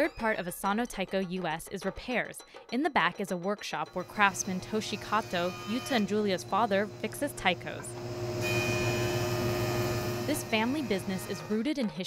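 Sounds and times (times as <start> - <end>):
jointer motor humming: 3.9 - 11.6
cutterhead planing wood hiss: 4.0 - 11.6.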